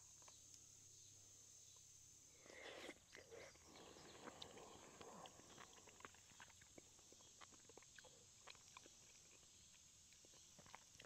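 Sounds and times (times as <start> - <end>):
faint chewing: 2.4 - 11.0.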